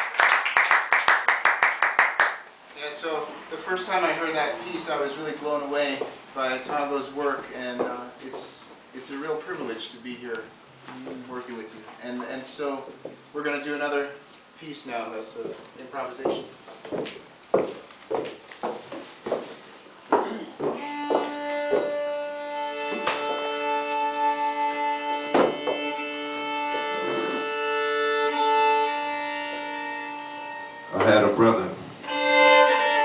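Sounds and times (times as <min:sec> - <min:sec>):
solo violin: 0:20.6 - 0:31.4, 0:32.0 - 0:33.0.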